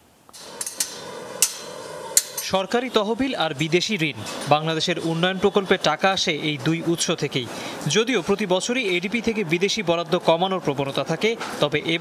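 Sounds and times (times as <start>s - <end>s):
construction site background: 0.3s - 12.0s
hammering on steel: 0.6s - 2.5s.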